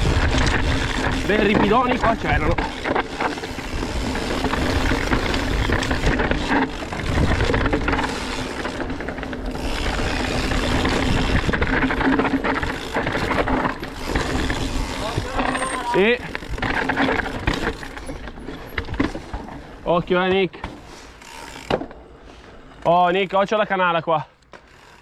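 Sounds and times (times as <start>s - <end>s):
bike knocking and rattling: 0.0s - 25.0s
bike tyres on gravel and rock: 0.0s - 25.0s.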